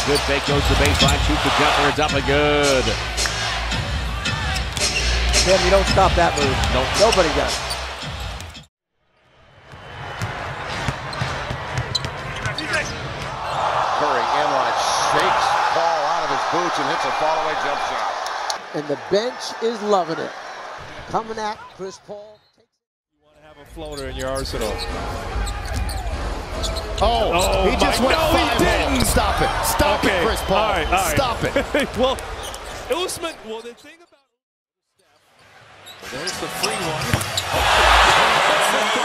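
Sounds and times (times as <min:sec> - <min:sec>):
arena crowd noise: 0:00.0 - 0:08.6, 0:09.5 - 0:22.3, 0:23.4 - 0:33.7, 0:35.0 - 0:39.0
sneaker squeaks: 0:10.7 - 0:12.9, 0:23.9 - 0:27.5.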